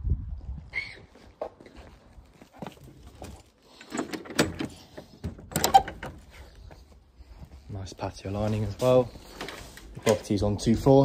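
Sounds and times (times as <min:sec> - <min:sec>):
wooden gate latch clicks and knocks: 0:03.8 - 0:06.2.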